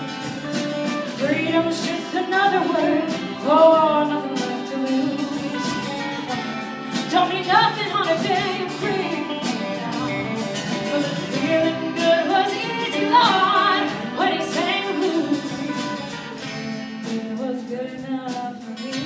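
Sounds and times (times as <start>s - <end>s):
distant live band playing: 0.0s - 19.0s.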